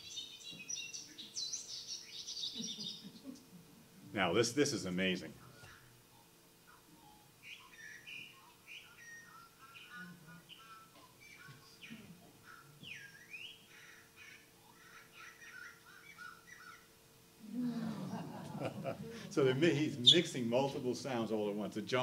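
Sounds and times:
slowed birdsong through speaker: 0.0s - 3.5s, 5.4s - 17.0s
steady low hum: 0.0s - 22.0s.

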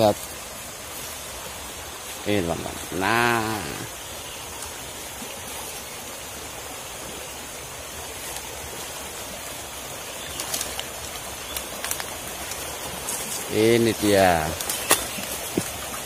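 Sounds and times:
creek running over stones: 0.0s - 16.0s.

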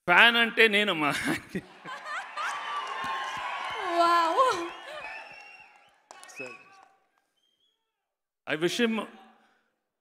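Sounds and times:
crowd whooping and cheering: 1.6s - 7.0s.

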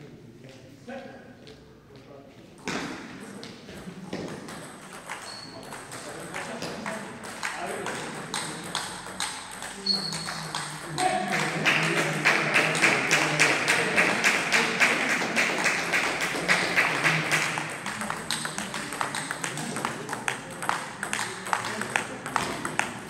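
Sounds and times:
table tennis balls clicking: 4.2s - 11.1s, 17.4s - 23.0s.

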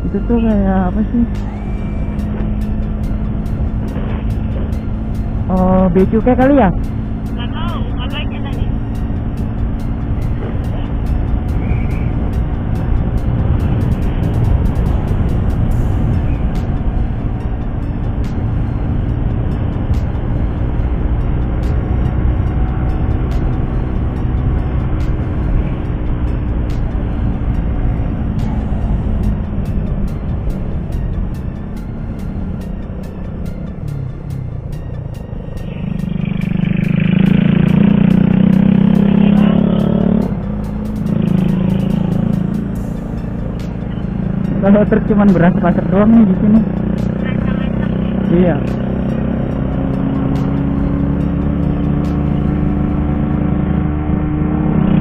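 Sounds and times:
motorcycle engine hum: 0.0s - 55.0s
wind rush: 9.9s - 21.5s.

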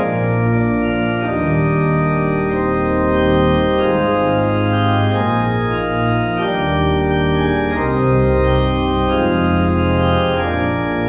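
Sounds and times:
organ playing sustained chords: 0.0s - 11.0s.

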